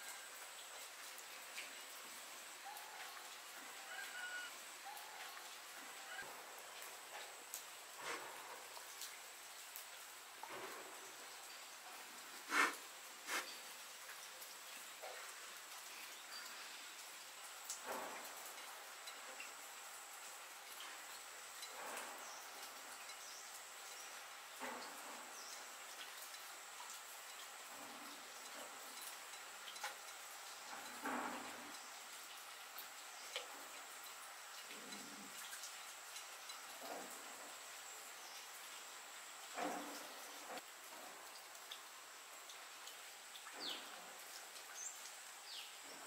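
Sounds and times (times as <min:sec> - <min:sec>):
faint steady hiss: 0:00.0 - 0:46.0.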